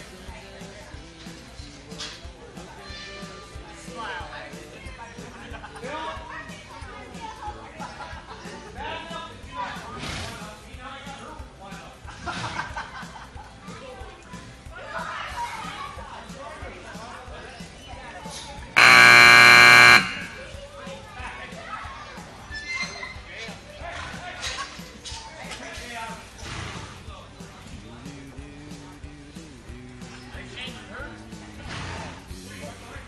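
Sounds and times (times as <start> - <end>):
music: 0.0 - 33.0
loud arena timer buzzer: 18.8 - 20.6.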